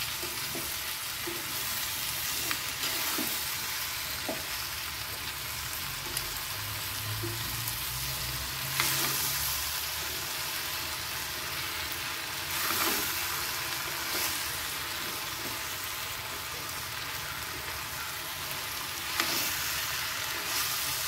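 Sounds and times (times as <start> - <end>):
spatula stirring in pan: 0.0 - 16.3
food sizzling in oil: 0.0 - 21.0.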